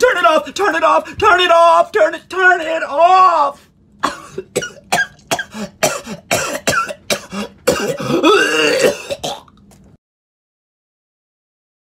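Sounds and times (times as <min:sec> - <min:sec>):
man coughing: 0:04.0 - 0:09.5.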